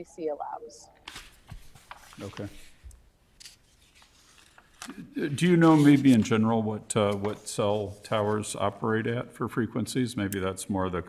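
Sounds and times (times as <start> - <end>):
soft rustle: 1.1 - 2.8.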